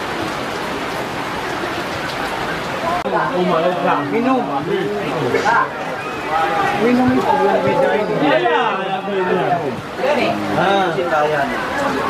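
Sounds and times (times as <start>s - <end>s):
rain on fabric canopy: 0.0s - 12.0s.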